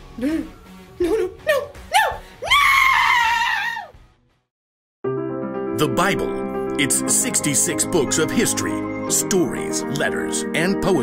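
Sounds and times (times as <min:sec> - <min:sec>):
woman crying out: 0:01.0 - 0:03.9.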